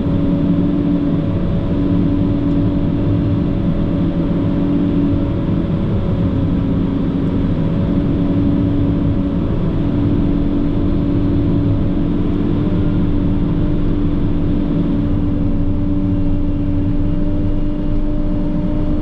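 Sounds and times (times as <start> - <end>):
snow groomer engine droning: 0.0 - 19.0.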